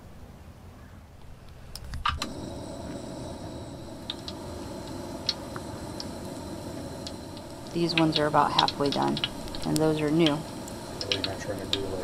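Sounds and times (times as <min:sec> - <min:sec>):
sharp clicks: 0:01.7 - 0:02.4, 0:03.8 - 0:12.0
dough frying in hot oil: 0:02.0 - 0:12.0.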